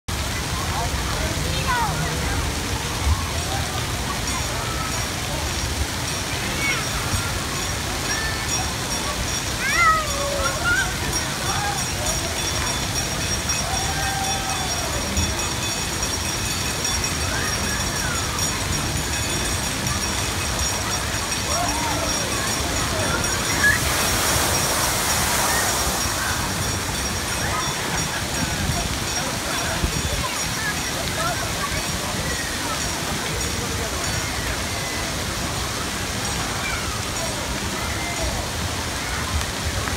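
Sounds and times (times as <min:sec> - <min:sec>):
water splashing and running: 0:00.1 - 0:39.9.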